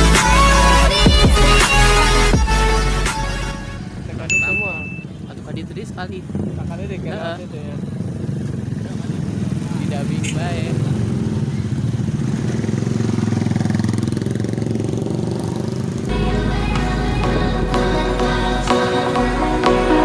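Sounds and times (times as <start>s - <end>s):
motorcycle engine riding: 3.7s - 19.5s.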